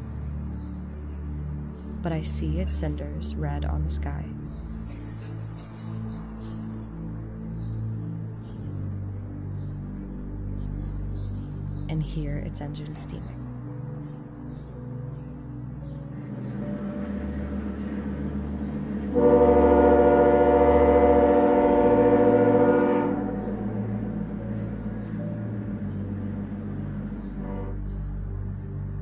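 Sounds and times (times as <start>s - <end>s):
low steady drone: 0.0s - 29.0s
train horn: 16.2s - 27.8s.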